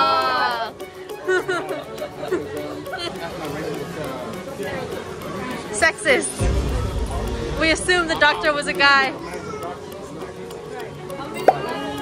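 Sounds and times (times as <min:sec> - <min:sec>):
chatter of several people: 0:00.0 - 0:12.0.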